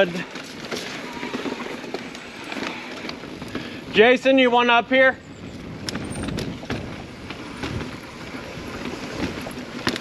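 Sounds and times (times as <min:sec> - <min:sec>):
bike knocking and rattling: 0:00.0 - 0:10.0
bike tyres on dirt trail: 0:00.0 - 0:10.0.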